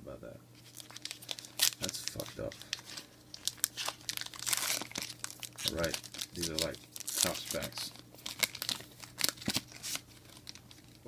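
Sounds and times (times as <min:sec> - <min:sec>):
foil wrapper crinkling: 0:00.6 - 0:11.0.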